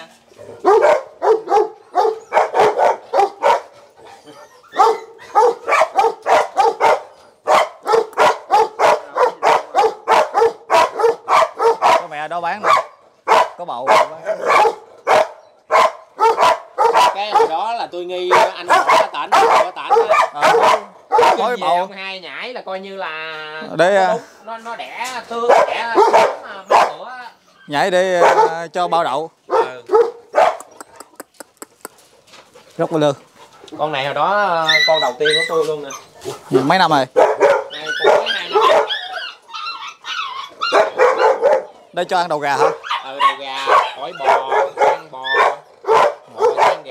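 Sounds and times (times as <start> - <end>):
dog barking: 0.6 - 3.8, 4.8 - 21.7, 25.4 - 27.1, 28.2 - 28.7, 29.5 - 30.8, 37.1 - 39.1, 40.6 - 41.8, 42.4 - 46.9.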